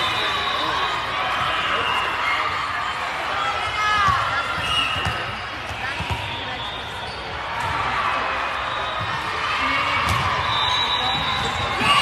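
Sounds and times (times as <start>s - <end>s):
echoing chatter of people: 0.0s - 12.0s.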